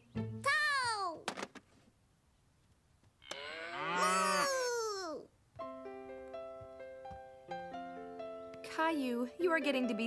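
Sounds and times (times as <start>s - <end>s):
child mooing like a cow: 3.2s - 5.3s.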